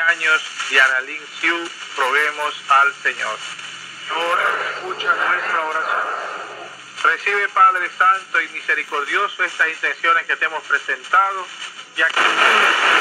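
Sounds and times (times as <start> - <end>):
person talking over small radio speaker: 0.0 - 13.0
steady high hiss: 0.0 - 13.0.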